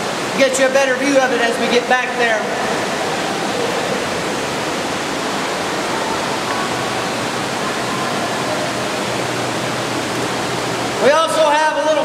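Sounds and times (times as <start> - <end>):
water rushing over dam: 0.0 - 12.0.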